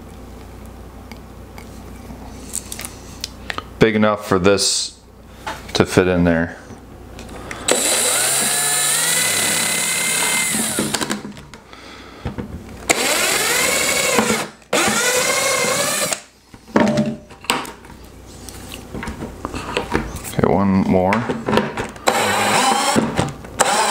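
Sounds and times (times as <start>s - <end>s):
cordless drill boring through plastic: 7.7s - 11.2s, 12.9s - 16.3s, 22.0s - 23.9s.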